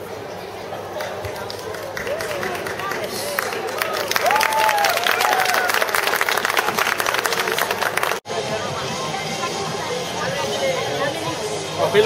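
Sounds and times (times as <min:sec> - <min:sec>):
crowd chatter: 0:00.0 - 0:12.0
audience applauding: 0:01.0 - 0:08.2.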